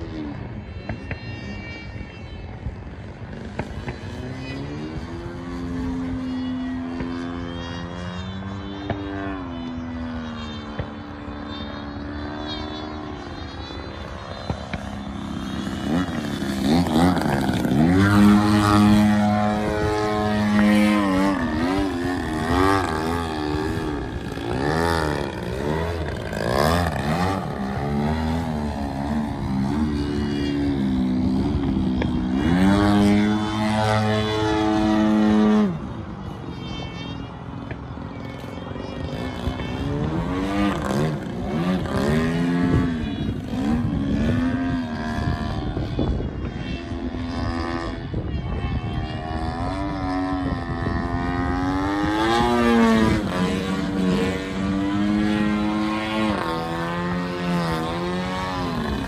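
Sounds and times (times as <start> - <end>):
model airplane propeller drone: 0.0 - 59.0.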